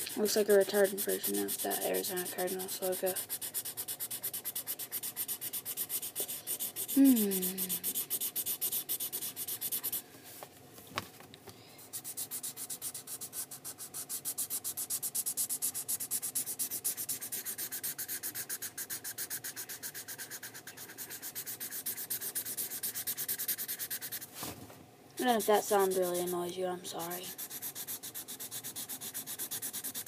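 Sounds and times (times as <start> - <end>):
marker scribbling on paper: 0.0 - 10.0, 11.8 - 24.3, 25.2 - 30.0.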